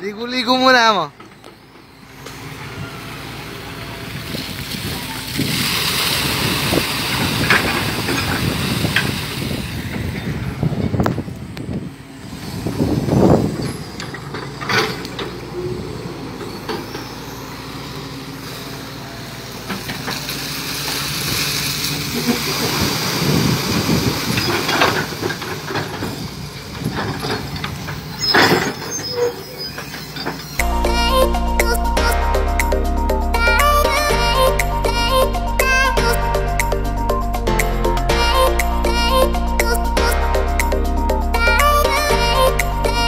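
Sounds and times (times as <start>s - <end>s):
excavator diesel engine running: 0.0s - 43.0s.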